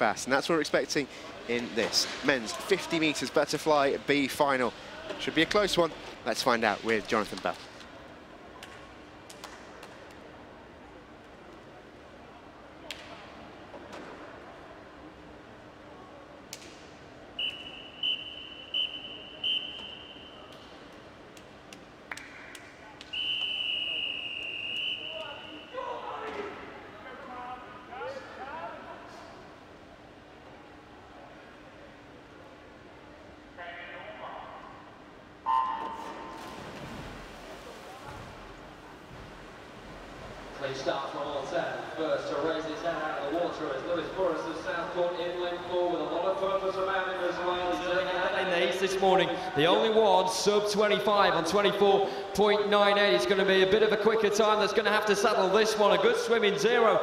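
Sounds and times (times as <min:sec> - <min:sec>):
referee's whistle blasts: 0:17.4 - 0:20.5, 0:23.1 - 0:25.8, 0:35.4 - 0:36.3.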